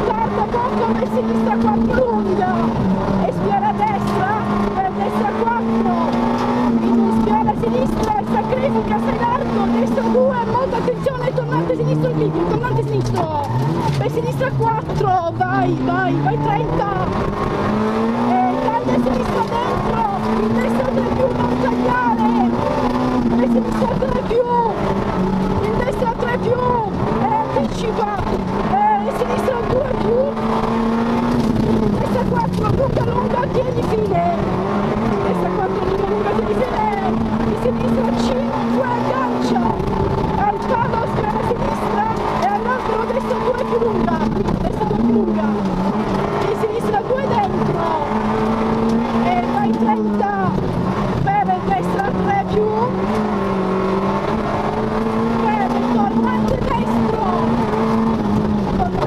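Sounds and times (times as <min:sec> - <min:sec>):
rally car engine at high revs: 0:00.0 - 0:59.0.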